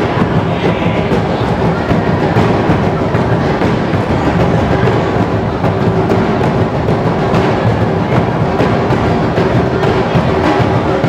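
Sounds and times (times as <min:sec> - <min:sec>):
large drums struck with sticks: 0:00.0 - 0:11.0.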